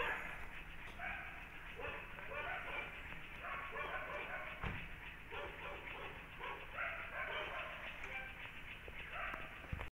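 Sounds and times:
dog barking: 1.0 - 4.7, 5.3 - 8.4, 9.1 - 9.6.

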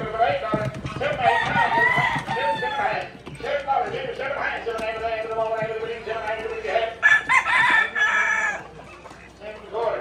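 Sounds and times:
chickens clucking: 0.0 - 10.0
roosters crowing: 0.0 - 10.0.

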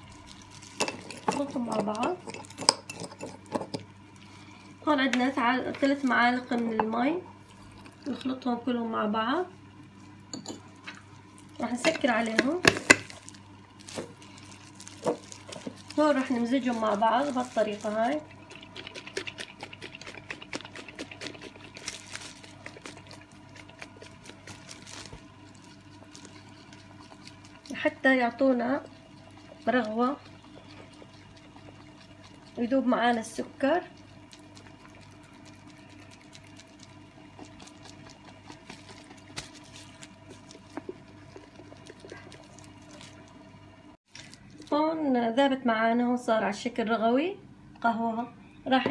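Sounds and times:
low steady hum: 0.0 - 48.9
liquid shaken in a glass jar: 13.9 - 43.2.

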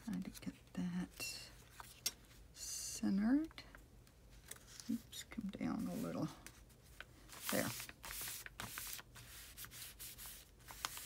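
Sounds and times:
hands rubbing paper: 5.8 - 11.0.

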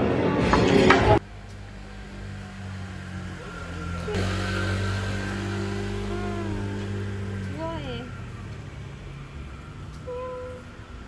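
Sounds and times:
vehicle engine idling: 1.2 - 11.0.

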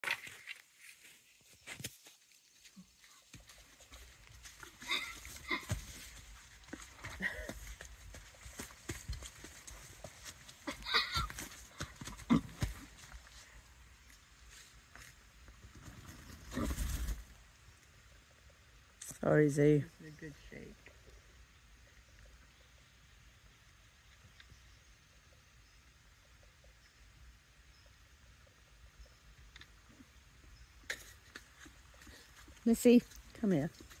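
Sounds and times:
hooves knocking on sand: 3.1 - 13.5
high-pitched horse calls: 10.6 - 12.9.

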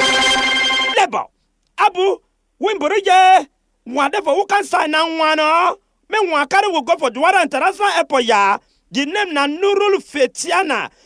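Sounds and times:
buzzy pitched tone: 0.0 - 1.2.

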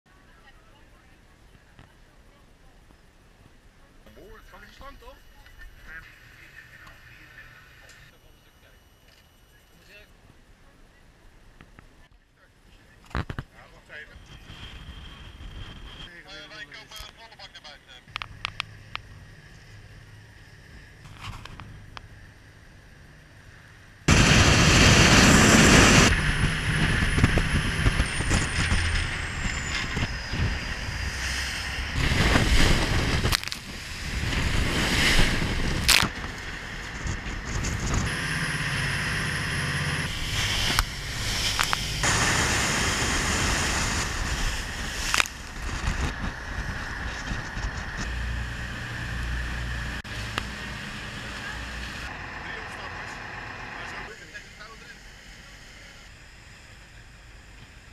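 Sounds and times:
boat engine rumble: 13.7 - 57.9
rushing water and spray: 24.1 - 37.2, 38.1 - 52.6
wind buffeting microphone: 24.1 - 49.2.

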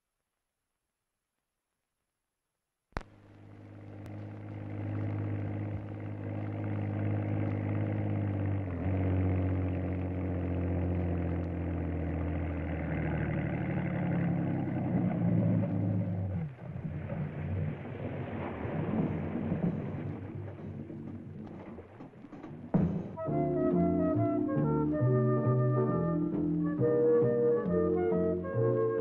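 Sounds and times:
motorboat engine humming: 3.0 - 29.0.

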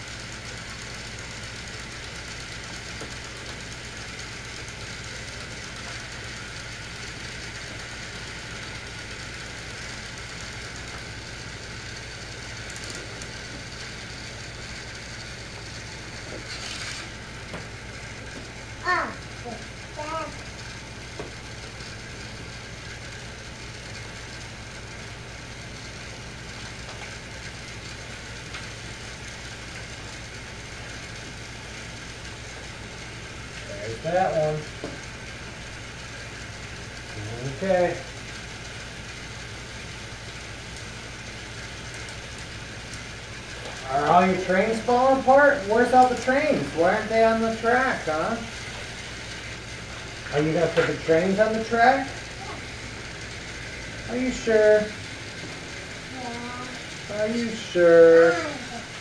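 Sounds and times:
toy train whirring: 0.0 - 59.0.

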